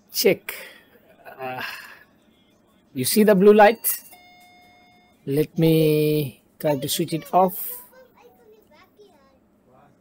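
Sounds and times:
children talking indistinctly: 6.6 - 9.6.

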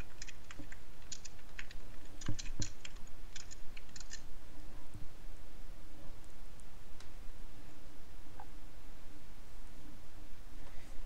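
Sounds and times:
keyboard typing: 0.0 - 4.2.

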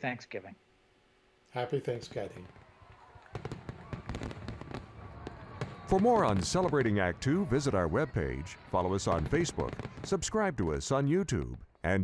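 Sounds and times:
fireworks popping and crackling: 2.0 - 11.7.

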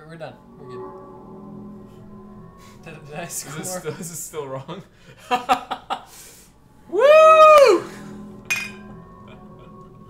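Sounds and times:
glasses clinking: 8.5 - 8.9.

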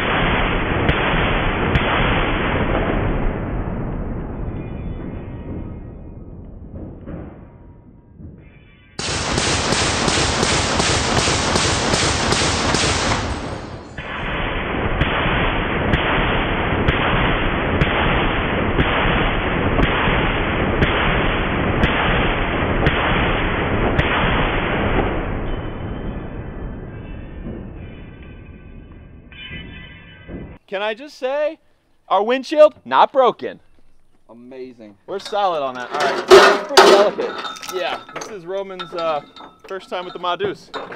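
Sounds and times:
heavy machine gun fire: 9.0 - 25.2.

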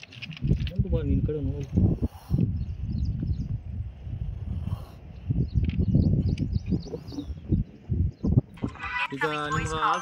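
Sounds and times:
small birds chirping: 0.0 - 10.0
wind buffeting microphone: 0.0 - 10.0.

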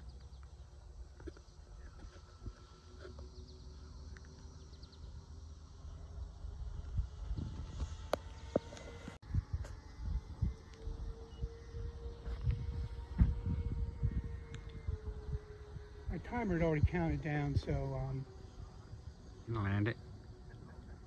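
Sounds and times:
distant model plane motors droning: 0.0 - 21.0
wind rumble on microphone: 6.1 - 19.2.

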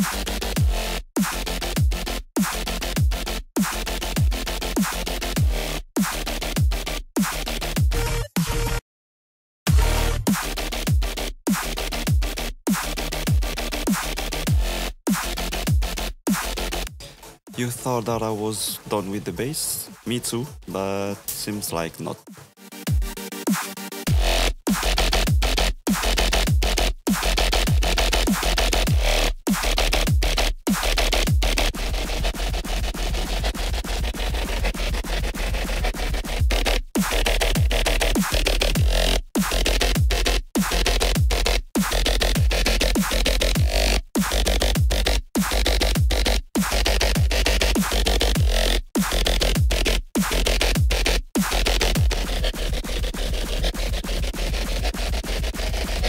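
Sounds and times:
deep kick drum: 0.0 - 1.2, 1.8 - 4.5, 5.3 - 5.7, 6.6 - 6.9, 9.7 - 11.5, 14.5 - 17.0, 24.1 - 32.0, 36.1 - 37.8, 38.6 - 56.0
dubstep music: 0.0 - 8.8, 9.7 - 56.0.

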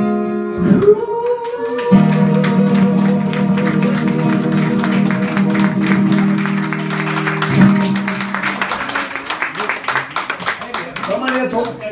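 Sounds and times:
audience clapping: 0.8 - 11.9
acoustic guitar chord strummed: 1.9 - 8.8.

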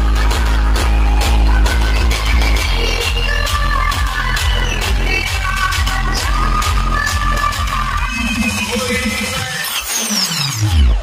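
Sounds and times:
electronic dance music with heavy bass: 0.0 - 11.0.

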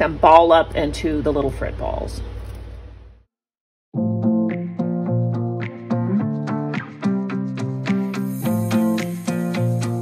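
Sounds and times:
plucked guitar tune: 4.0 - 10.0.

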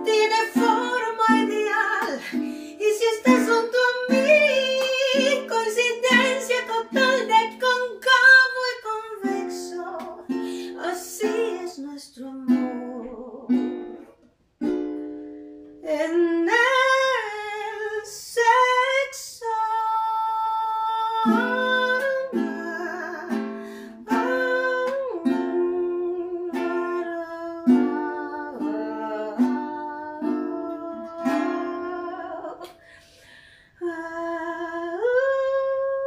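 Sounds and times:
woman singing: 0.0 - 14.2, 15.8 - 36.0
strummed ukulele chords: 0.0 - 15.8, 20.6 - 32.7.

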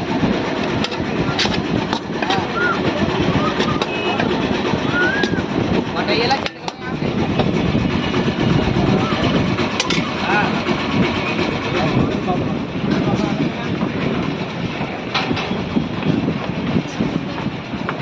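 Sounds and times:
wind buffeting microphone: 0.0 - 18.0
people talking indistinctly: 0.4 - 17.8.

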